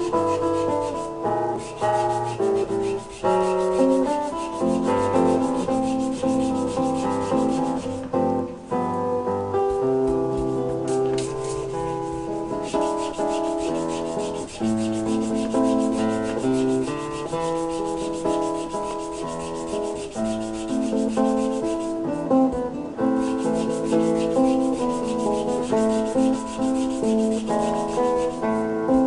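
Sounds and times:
hand sanding wood: 0.0 - 8.1, 9.7 - 22.0, 23.1 - 29.0
plucked and keyboard music: 0.0 - 29.0.

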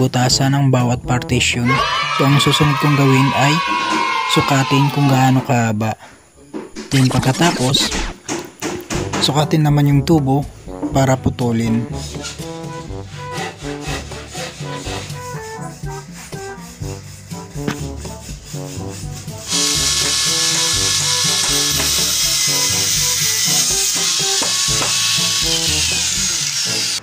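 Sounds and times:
background music: 0.0 - 5.5, 8.4 - 27.0
angle grinder cutting metal tube: 17.6 - 27.0.

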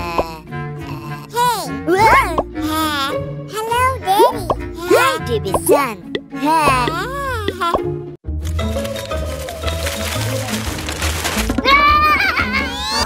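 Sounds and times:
squeaky cartoon voices babbling: 0.0 - 5.8
light children's music: 0.0 - 13.0.

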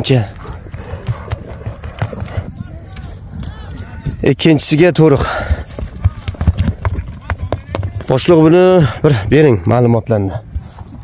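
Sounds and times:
hoofbeats on dry earth: 0.0 - 11.0.

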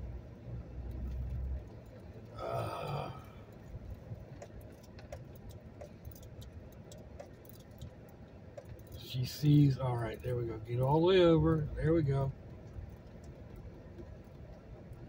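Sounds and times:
vehicle rumble inside cabin: 0.0 - 15.0
faint ticks: 0.8 - 15.0
person burping: 2.4 - 3.4.

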